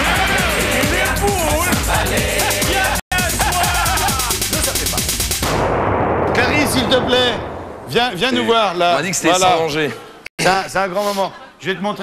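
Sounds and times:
music: 0.0s - 5.7s
comedy explosion blast: 5.3s - 9.4s.

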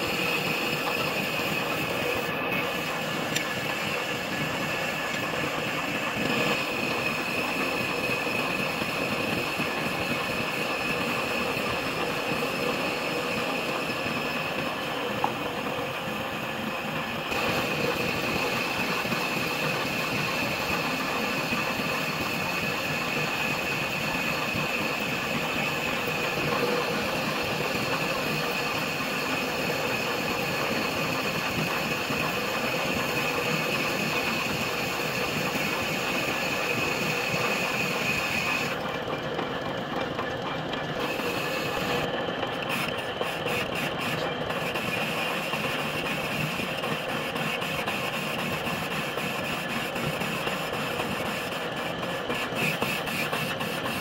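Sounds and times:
metal lathe running with high whine: 0.0s - 54.0s.

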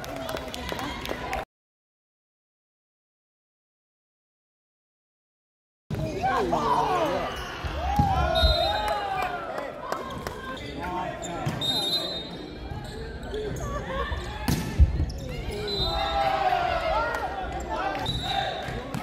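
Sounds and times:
players' voices: 5.9s - 19.0s.

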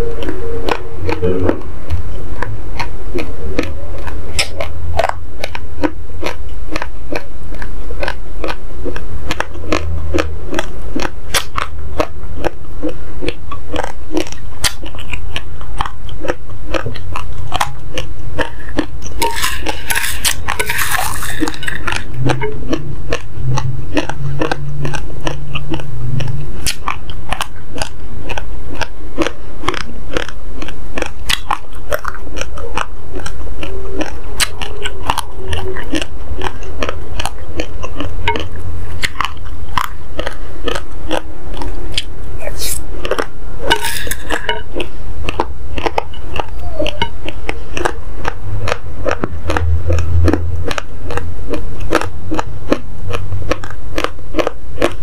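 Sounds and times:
chewing dry rice crunches: 0.0s - 55.0s.

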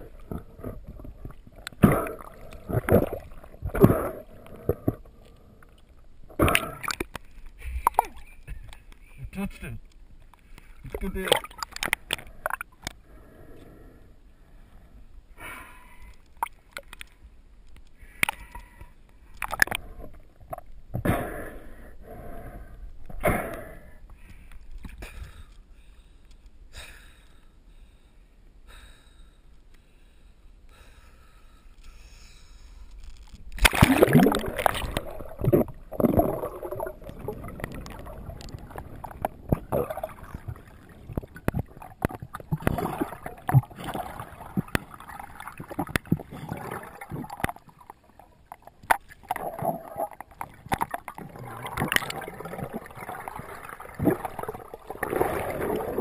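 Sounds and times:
water splashing and gurgling: 0.0s - 8.8s, 10.7s - 13.0s, 18.1s - 21.4s, 33.2s - 56.0s.

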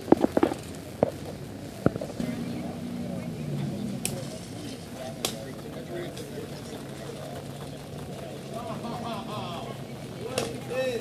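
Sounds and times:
car engine humming: 0.0s - 11.0s
indistinct chatter of cyclists: 0.0s - 11.0s.

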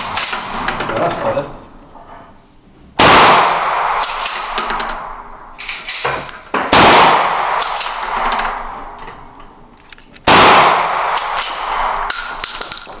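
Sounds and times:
shotgun shot echoing indoors: 0.0s - 0.8s, 3.0s - 9.6s, 10.2s - 13.0s
gun handling clicks: 9.8s - 10.3s, 11.2s - 13.0s.

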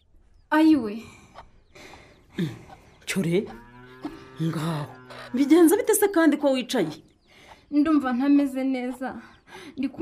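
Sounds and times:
low drawn-out animal calls: 1.4s - 6.0s.

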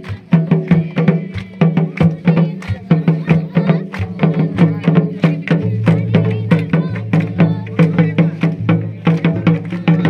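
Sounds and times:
hand drums beaten fast: 0.0s - 10.0s.

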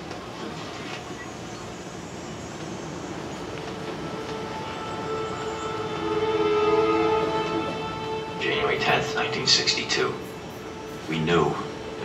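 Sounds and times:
sustained chord of held tones: 2.8s - 12.0s.

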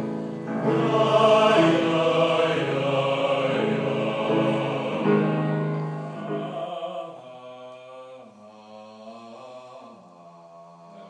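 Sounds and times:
low male voices singing: 0.0s - 11.0s.

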